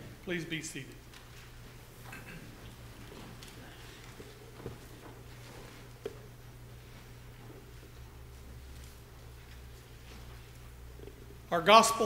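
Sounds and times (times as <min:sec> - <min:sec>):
people shuffling in pews: 0:00.0 - 0:11.0
steady low hum: 0:00.0 - 0:12.0.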